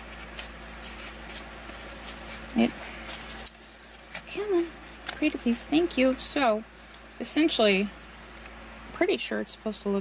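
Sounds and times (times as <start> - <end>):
cardboard rustling and scraping: 0.0 - 6.1
faint steady hum: 0.0 - 10.0.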